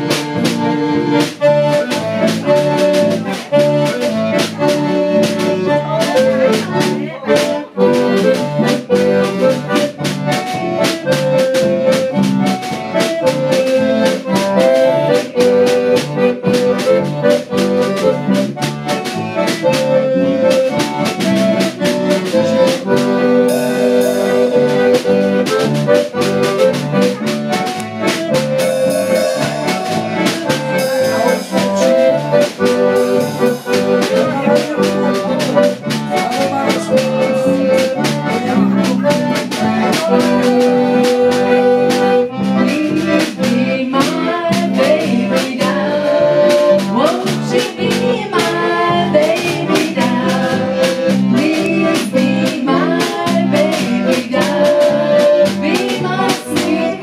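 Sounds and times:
concertina melody: 0.0s - 57.0s
drum kit beat: 0.0s - 57.0s
electric bass guitar: 0.0s - 57.0s
woman singing: 42.6s - 46.2s, 46.9s - 50.6s, 51.3s - 55.0s, 55.6s - 57.0s.

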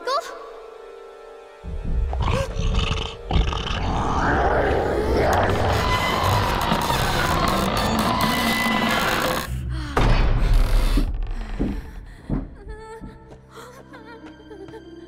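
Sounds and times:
dramatic music: 0.0s - 14.0s
cartoon monster roar: 2.1s - 7.8s.

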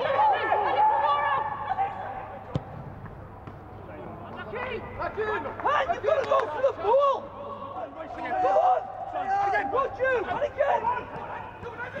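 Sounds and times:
football kick thud: 2.5s - 3.6s.

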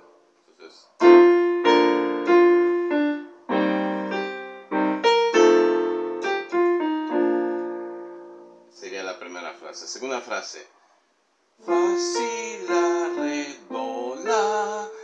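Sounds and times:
electronic piano playing hymn: 0.0s - 0.3s, 1.0s - 9.8s, 11.6s - 15.0s.

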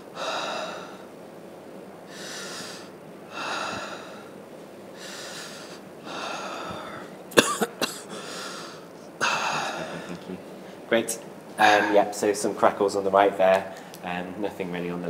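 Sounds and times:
man breathing deeply: 0.0s - 1.2s, 2.0s - 7.2s, 8.1s - 10.9s
man coughing: 7.3s - 8.2s, 9.2s - 10.4s.

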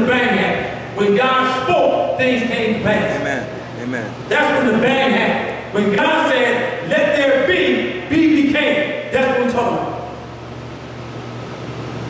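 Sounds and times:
air conditioner humming: 0.0s - 12.0s.

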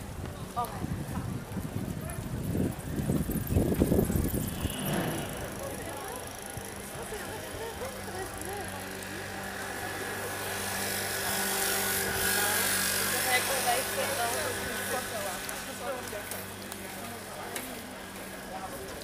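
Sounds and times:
murmur of many voices: 0.0s - 19.0s.

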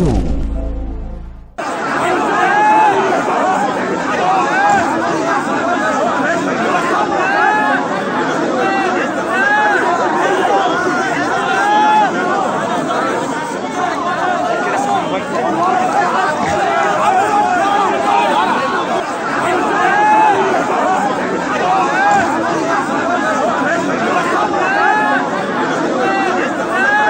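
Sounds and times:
crowd shouting and talking: 0.0s - 27.0s.

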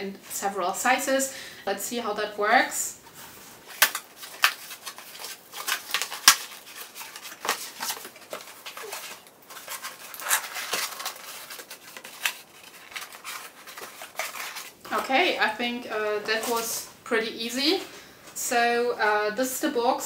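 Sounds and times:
cardboard box rustling and scraping: 4.4s - 14.8s.

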